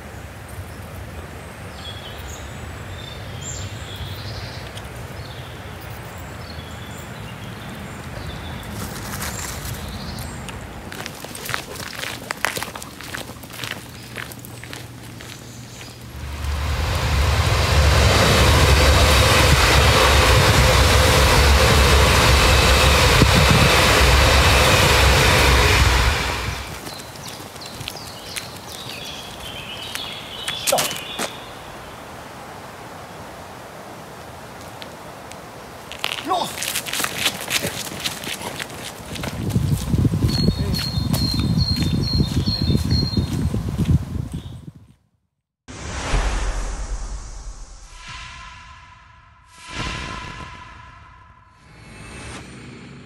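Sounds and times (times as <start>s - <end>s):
train rumbling over bridge: 16.0s - 27.2s.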